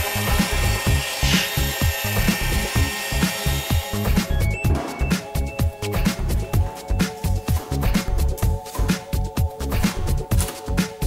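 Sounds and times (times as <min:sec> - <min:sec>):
electric drill mixer churning: 0:00.0 - 0:09.3
electronic music: 0:00.0 - 0:11.0.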